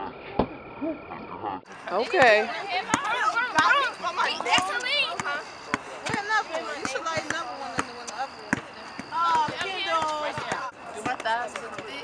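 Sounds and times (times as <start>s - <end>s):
people's voices: 0.8s - 12.0s
basketball bouncing on asphalt: 2.0s - 12.0s.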